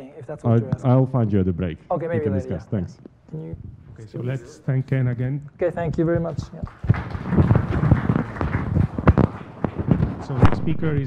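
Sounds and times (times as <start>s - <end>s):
audience applauding: 6.4s - 10.2s.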